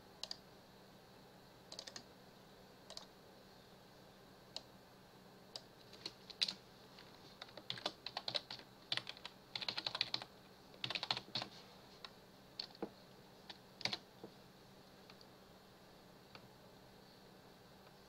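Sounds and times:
computer keyboard typing: 1.7 - 2.0, 2.9 - 3.1, 5.6 - 6.6, 7.4 - 11.5, 12.6 - 12.9, 13.5 - 14.0.

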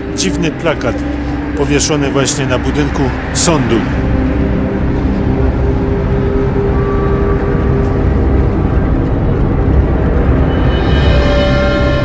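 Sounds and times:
background music with low held notes: 0.0 - 12.0.

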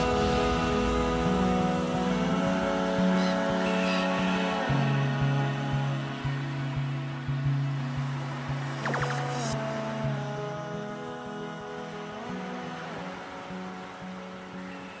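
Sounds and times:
soft low beats: 0.0 - 3.2
held instrumental chords: 0.0 - 9.6.

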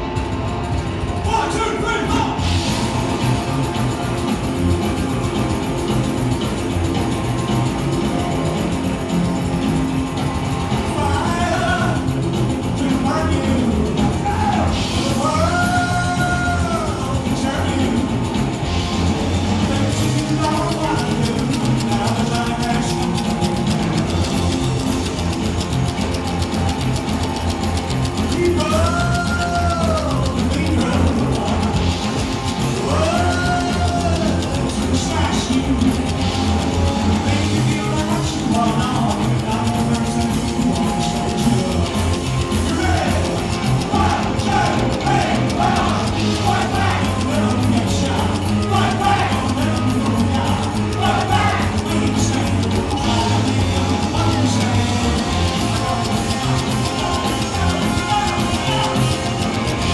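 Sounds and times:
drums: 0.0 - 59.9
electric guitars: 0.0 - 59.9
rockabilly band playing live: 0.0 - 59.9
slapped upright bass: 2.4 - 59.9
lead voice singing: 10.8 - 24.1, 28.2 - 59.9.

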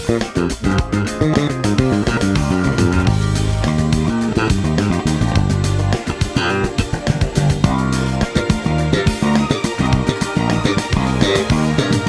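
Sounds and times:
bass guitar played fingerstyle: 0.0 - 12.0.

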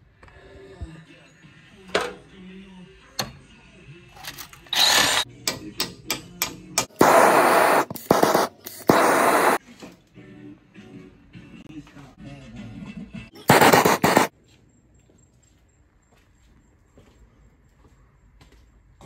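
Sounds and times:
loud bursts of noise: 7.0 - 9.6, 13.5 - 14.3
background music: 9.6 - 14.3.

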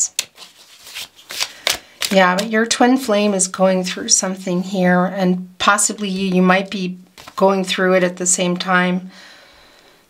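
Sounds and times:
cards being shuffled: 0.0 - 2.6, 7.2 - 7.4.

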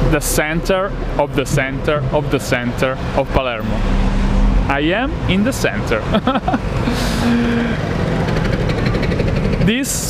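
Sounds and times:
passing vehicles rumble: 0.0 - 10.0.

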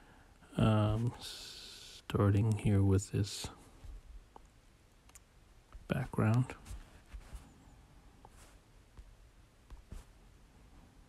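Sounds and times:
man speaking: 0.5 - 3.6, 5.9 - 6.6.

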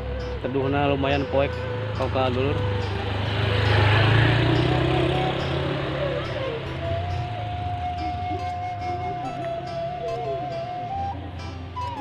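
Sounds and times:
music with held flute-like tone: 0.0 - 12.0
motor scooter passing by: 1.1 - 12.0.

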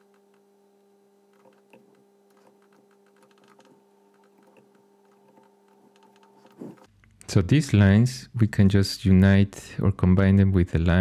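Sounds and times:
keyboard and mouse clicks: 1.3 - 6.9.

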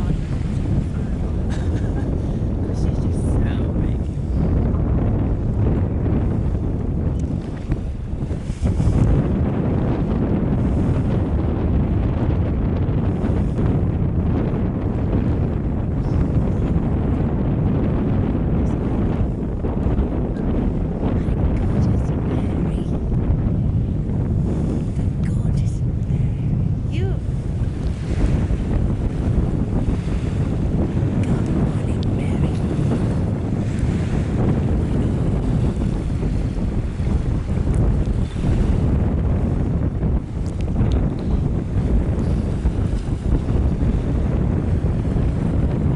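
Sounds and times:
wind buffeting microphone: 0.0 - 45.9.

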